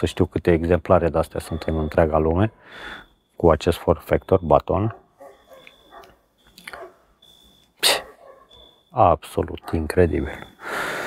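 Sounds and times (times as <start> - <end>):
distant dog barking: 1.2 - 2.6, 4.8 - 7.2, 7.8 - 8.9, 9.5 - 10.1.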